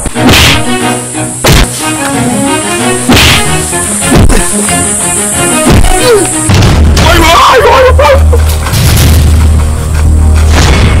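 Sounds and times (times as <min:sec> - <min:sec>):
dramatic trailer music: 0:00.0 - 0:11.0
deep bass drone: 0:03.4 - 0:11.0.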